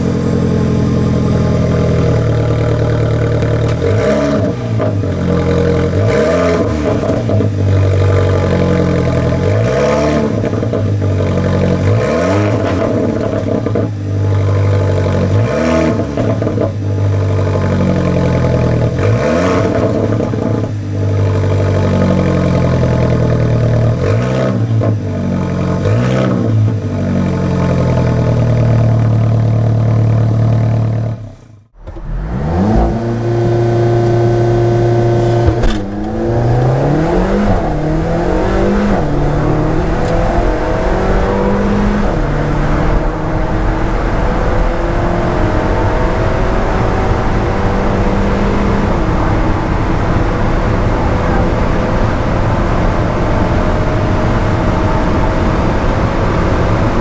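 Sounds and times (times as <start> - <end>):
car engine idling and revving: 0.0 - 57.0.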